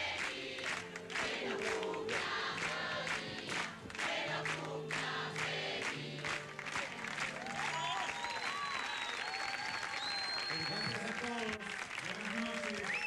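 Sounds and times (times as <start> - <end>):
audience applauding and cheering: 0.0 - 13.0
long high whistle: 7.7 - 11.0.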